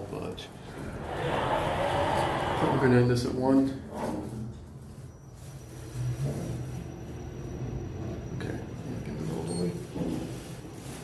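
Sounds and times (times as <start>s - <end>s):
elevator rumble: 0.6s - 3.4s.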